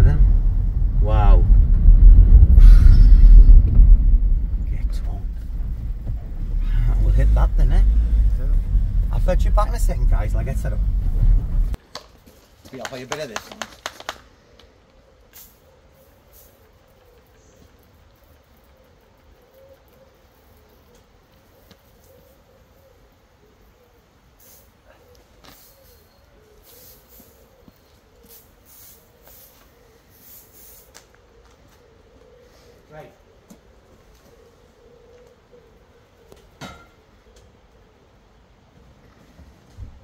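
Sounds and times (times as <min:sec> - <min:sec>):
spray bottle hissing: 0:30.2 - 0:31.0.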